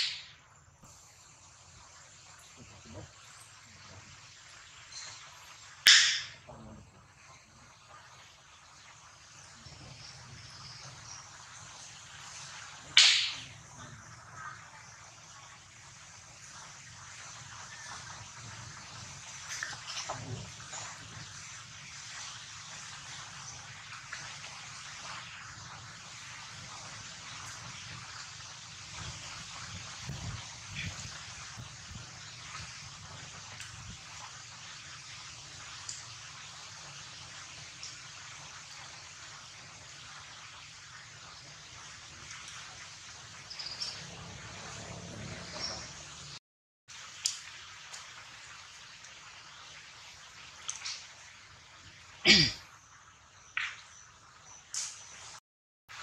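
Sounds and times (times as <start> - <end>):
outdoor background hiss: 0.0 - 56.0.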